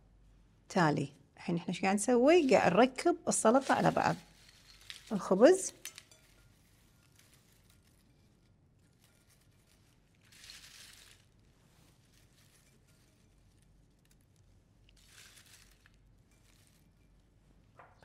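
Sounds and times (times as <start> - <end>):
crackling rustles of crisp bread: 2.3 - 17.7.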